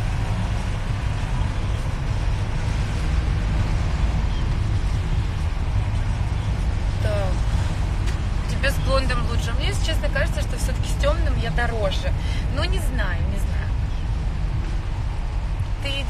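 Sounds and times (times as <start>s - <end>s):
road rumble inside car: 0.0s - 16.0s
person talking: 8.5s - 13.6s.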